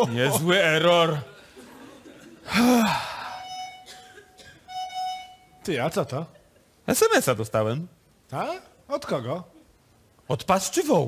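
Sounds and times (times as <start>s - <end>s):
man sighing: 2.5s - 3.5s.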